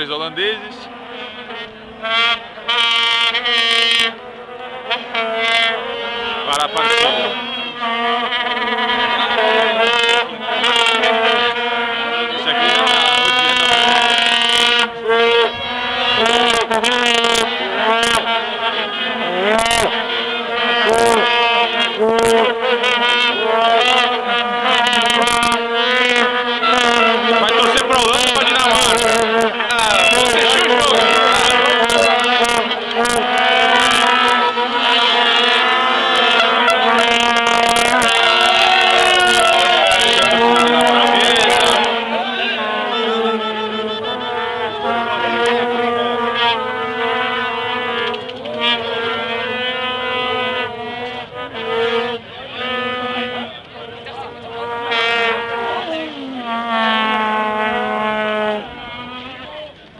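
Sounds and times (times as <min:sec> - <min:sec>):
vuvuzelas droning: 0:00.0 - 0:59.9
crowd shouting and chanting: 0:27.4 - 0:33.2, 0:37.6 - 0:45.4.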